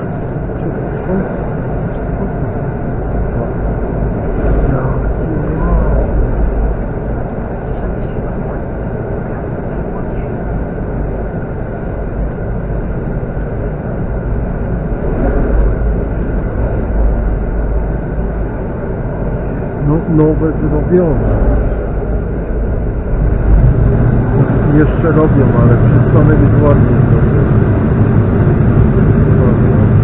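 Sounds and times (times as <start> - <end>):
train wheels rumbling on rail: 0.0 - 30.0.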